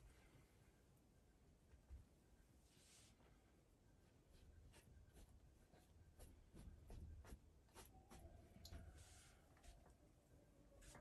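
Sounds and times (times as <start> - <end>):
brush strokes on canvas: 2.6 - 3.4, 4.0 - 9.9.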